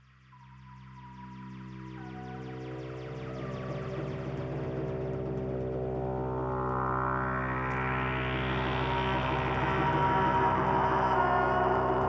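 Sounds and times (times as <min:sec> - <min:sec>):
layered synthesizer drone: 0:00.0 - 0:12.0.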